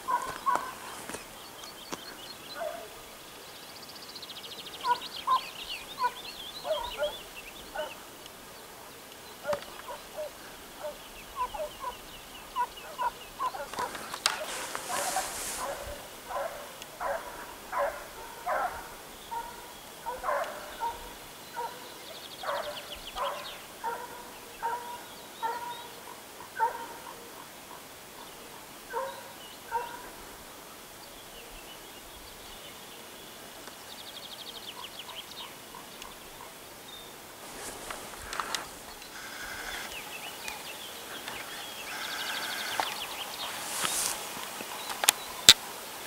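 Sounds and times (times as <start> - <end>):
distant hounds baying: 0.0 - 1.1, 2.5 - 3.0, 4.8 - 8.1, 9.4 - 30.2.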